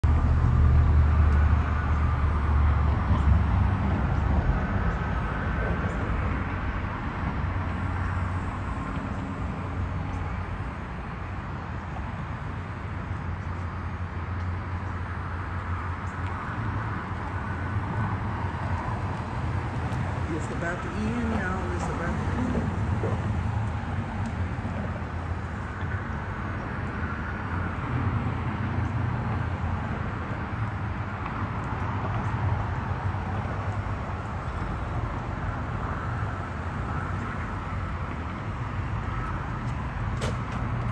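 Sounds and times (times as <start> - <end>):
distant road traffic rumble: 0.0 - 40.9.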